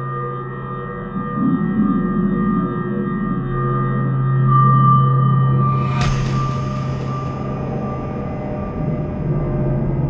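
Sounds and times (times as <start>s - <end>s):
low ambient drone: 0.0s - 10.0s.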